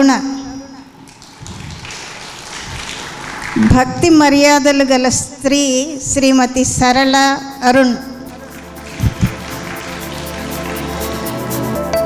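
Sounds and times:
audience applause: 0:01.3 - 0:03.7, 0:08.3 - 0:11.9.

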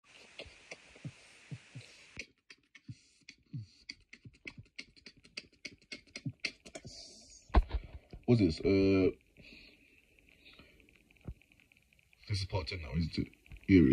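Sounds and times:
mouth beatboxing: 0:00.2 - 0:07.4.

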